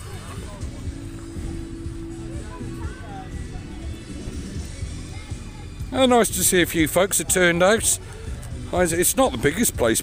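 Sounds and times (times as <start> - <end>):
continuous low rumble: 0.0 - 10.0
distant voices: 0.0 - 10.0
funfair music: 0.0 - 10.0
steady held tone: 0.5 - 6.0.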